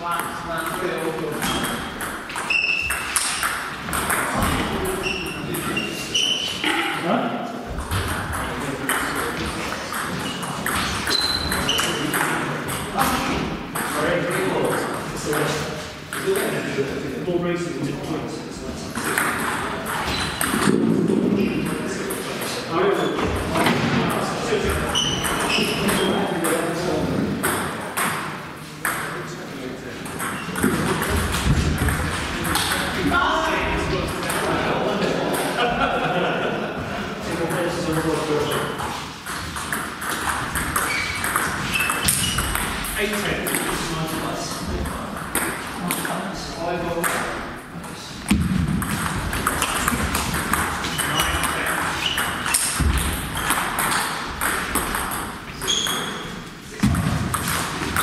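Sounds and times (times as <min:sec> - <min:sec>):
people talking: 0:00.0 - 0:01.9, 0:03.9 - 0:39.0, 0:42.0 - 0:48.4, 0:49.0 - 0:53.0
table tennis balls pinging: 0:00.0 - 0:07.0, 0:07.7 - 0:16.8, 0:18.9 - 0:29.3, 0:30.0 - 0:35.8, 0:37.3 - 0:46.2, 0:46.9 - 0:58.0.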